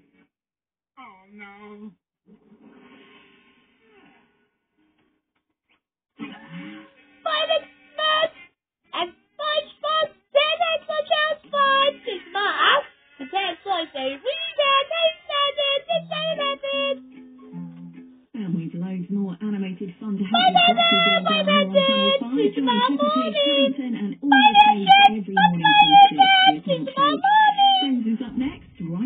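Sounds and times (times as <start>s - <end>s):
music: 6.2s - 28.4s
child-like voice singing: 7.3s - 8.4s, 9.0s - 17.0s, 20.3s - 28.0s
person speaking: 9.0s - 18.1s, 20.2s - 29.0s
held low musical notes: 14.6s - 18.3s.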